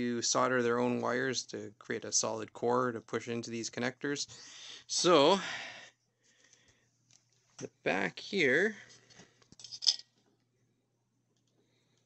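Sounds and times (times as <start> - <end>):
metal scrape or clink: 9.6 - 10.0.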